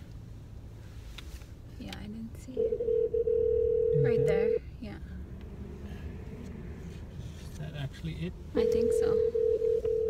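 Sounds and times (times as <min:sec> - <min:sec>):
long electronic beep: 0:03.2 - 0:04.6.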